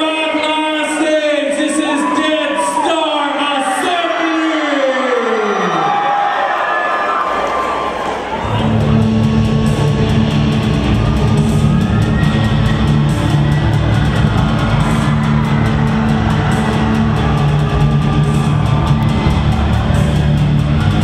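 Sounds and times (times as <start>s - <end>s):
metal band playing live: 8.6s - 21.0s.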